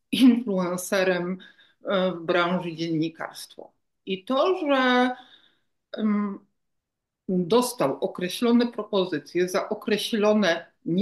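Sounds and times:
woman speaking: 0.1 - 6.5, 7.3 - 11.0.

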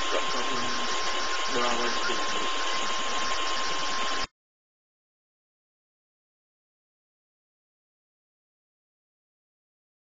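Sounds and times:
high constant whine: 0.0 - 4.3
steady hiss: 0.0 - 4.3.

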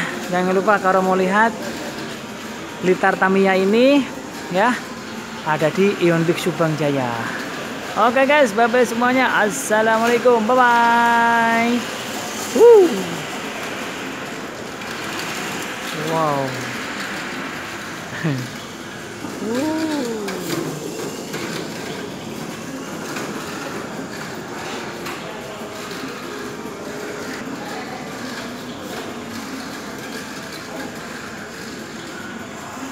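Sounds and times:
indoor hall background noise: 0.0 - 32.9
toy car whirring rattle: 9.5 - 32.9
person hooting: 12.6 - 13.2.

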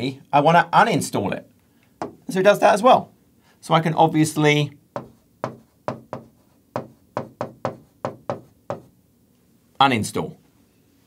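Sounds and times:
stylus tapping on glass: 5.0 - 8.9.

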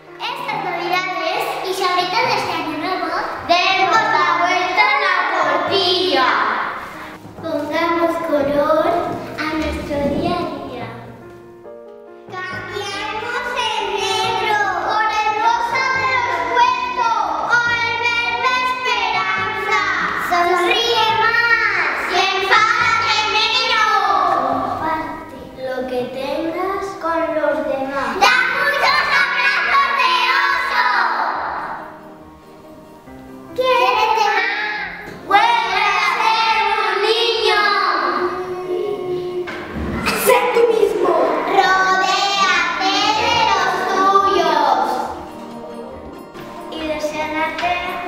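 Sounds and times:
instrumental backing music: 0.0 - 48.0
children singing: 27.9 - 31.9, 33.6 - 48.0.

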